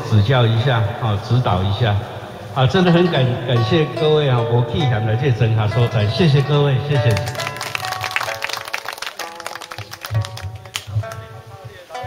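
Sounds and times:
pipa plucked notes: 0:02.8 - 0:12.0.

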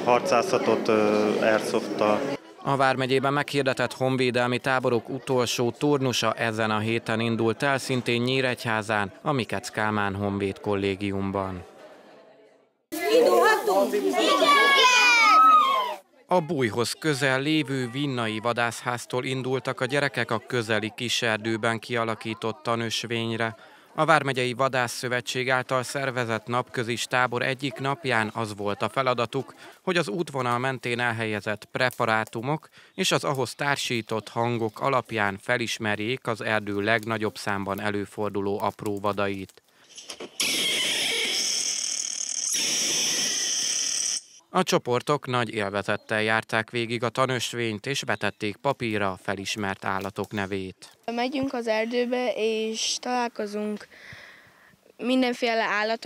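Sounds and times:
children talking and calling out: 0:13.0 - 0:19.0, 0:51.0 - 0:53.9.

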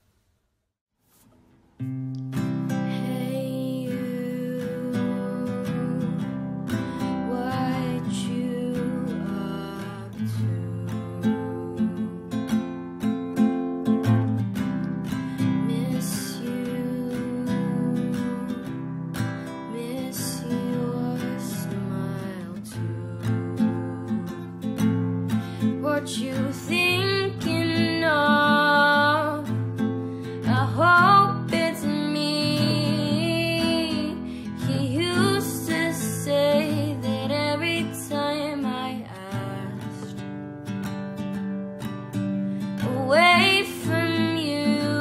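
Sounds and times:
person singing: 0:02.8 - 0:12.4, 0:15.4 - 0:18.8
acoustic guitar strumming: 0:04.0 - 0:45.0.

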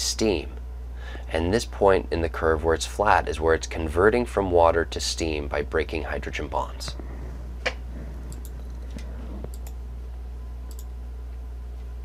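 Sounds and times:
low electrical hum: 0:00.0 - 0:12.0
computer mouse clicks: 0:07.7 - 0:09.8, 0:10.7 - 0:10.9.

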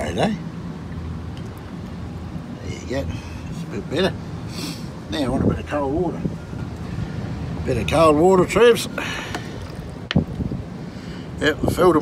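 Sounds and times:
wind on microphone: 0:09.3 - 0:10.8.

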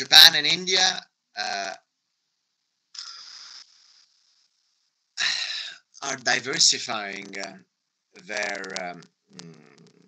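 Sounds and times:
breathy vocal sound: 0:05.2 - 0:07.5.

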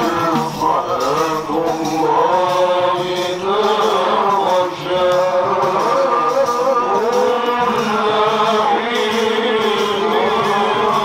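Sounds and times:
man chanting into a microphone: 0:00.0 - 0:11.0.

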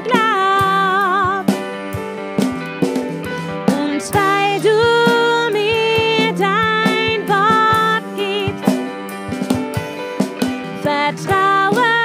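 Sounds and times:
woman singing: 0:00.0 - 0:01.6, 0:03.6 - 0:09.0, 0:10.7 - 0:12.0
electric guitar: 0:00.0 - 0:12.0
keyboard: 0:00.0 - 0:12.0.

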